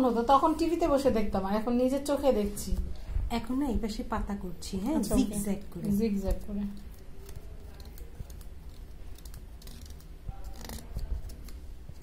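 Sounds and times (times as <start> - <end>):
needle scratching pumpkin rind: 5.2 - 12.0.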